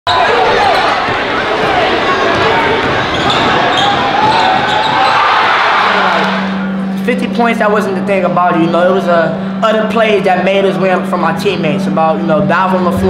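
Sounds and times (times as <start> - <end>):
crowd shouting: 0.1 - 6.7
basketball bouncing on hardwood: 1.0 - 5.1.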